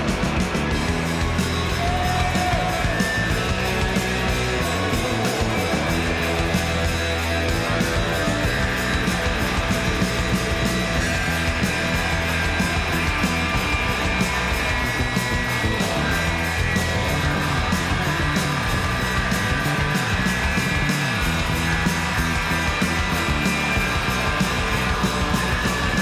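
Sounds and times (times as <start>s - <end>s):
rock band playing: 0.0s - 26.0s.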